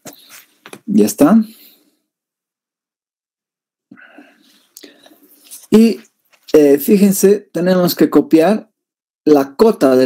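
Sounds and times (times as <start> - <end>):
man talking: 0.9 - 1.6, 5.5 - 8.7, 9.3 - 10.0
faint whispered breath: 3.9 - 5.6.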